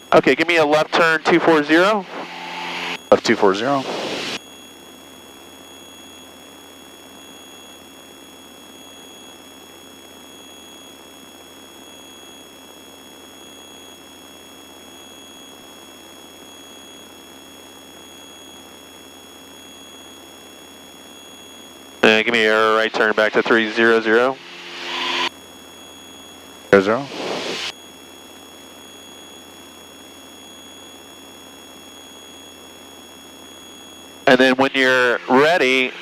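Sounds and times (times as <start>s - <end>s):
high-pitched electronic whines: 0.0s - 36.0s
aircraft cabin drone and hiss: 0.1s - 4.4s, 21.3s - 25.3s, 26.2s - 27.7s, 34.3s - 36.0s.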